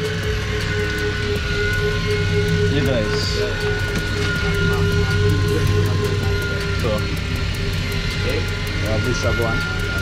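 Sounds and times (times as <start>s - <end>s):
boat motor running: 0.0s - 10.0s.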